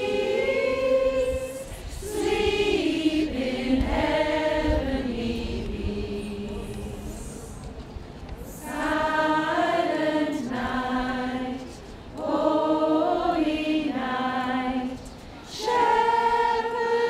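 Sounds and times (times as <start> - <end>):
group singing a carol: 0.0 - 7.7, 8.5 - 17.0.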